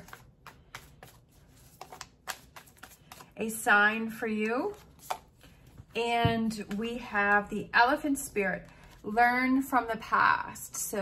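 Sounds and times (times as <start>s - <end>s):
cards being shuffled: 0.0s - 3.4s, 4.7s - 6.0s.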